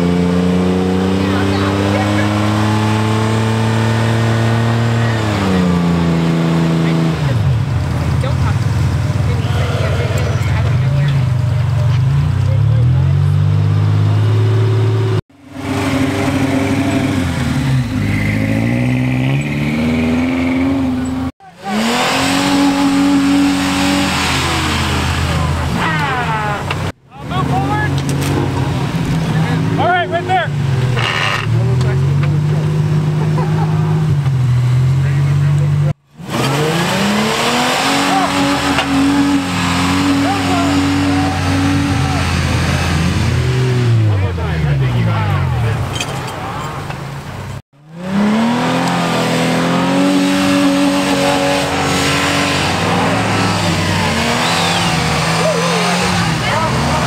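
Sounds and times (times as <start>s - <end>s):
truck engines revving: 0.0s - 57.0s.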